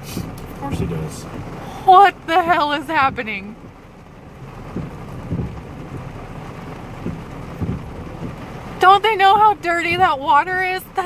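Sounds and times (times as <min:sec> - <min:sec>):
dull low thump: 0:00.0 - 0:11.0
heavy rain on car roof: 0:00.0 - 0:11.0.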